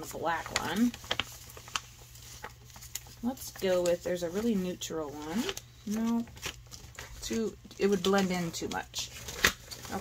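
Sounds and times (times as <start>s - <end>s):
paper and plastic folder handled: 0.0s - 10.0s.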